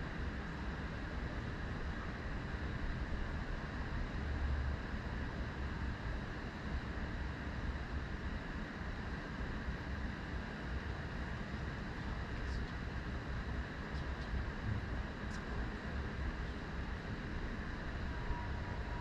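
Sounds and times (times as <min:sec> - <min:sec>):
background rumble and hiss: 0:00.0 - 0:19.0.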